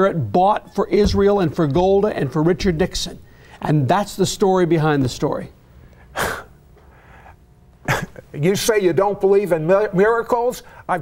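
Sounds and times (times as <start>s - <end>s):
speech: 0.0s - 5.6s, 8.3s - 11.0s.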